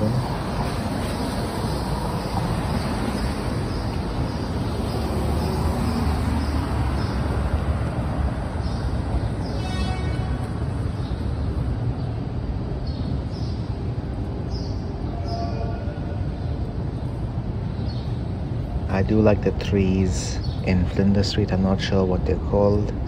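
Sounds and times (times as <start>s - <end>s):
cars passing on wet road: 0.0s - 10.9s.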